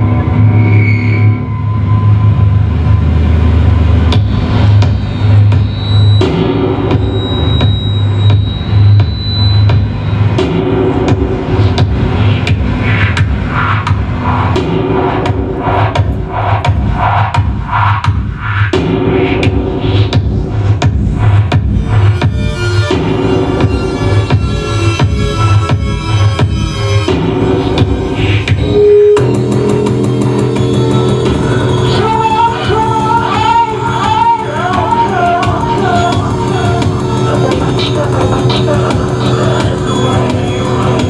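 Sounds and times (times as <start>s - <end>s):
heavy steady bass: 0.0s - 41.0s.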